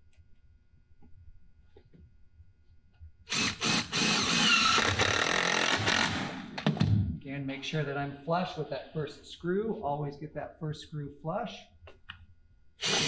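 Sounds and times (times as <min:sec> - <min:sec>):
impact driver driving screw: 0:03.3 - 0:06.7, 0:12.8 - 0:13.0.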